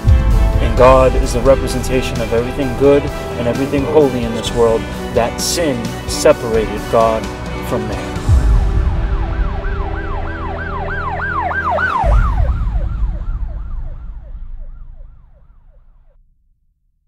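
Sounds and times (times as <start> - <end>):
low boom: 0.0 - 6.0, 8.2 - 16.6
deep low drone: 0.0 - 16.4
emergency vehicle siren: 8.2 - 16.2.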